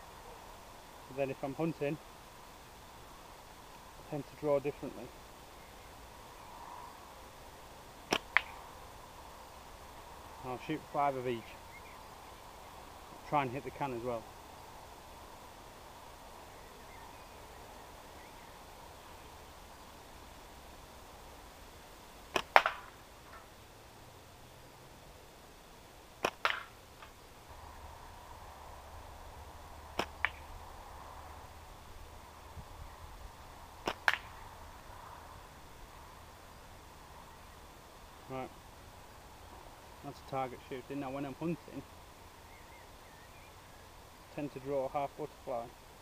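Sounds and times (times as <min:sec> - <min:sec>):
ball cracking against target: 0:08.1 - 0:08.6, 0:22.3 - 0:23.4, 0:26.2 - 0:27.1, 0:29.9 - 0:30.5, 0:33.8 - 0:34.4
slingshot bands snapping: 0:22.3 - 0:22.9, 0:26.2 - 0:27.1, 0:33.8 - 0:34.4.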